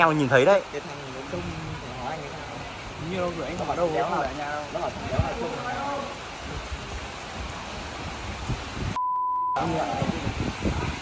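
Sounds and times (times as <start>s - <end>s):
outdoor background hiss: 0.0s - 9.0s.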